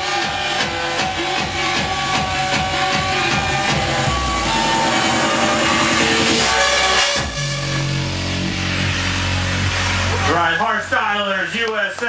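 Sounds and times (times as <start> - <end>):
kick-drum beat: 0.0 - 8.3.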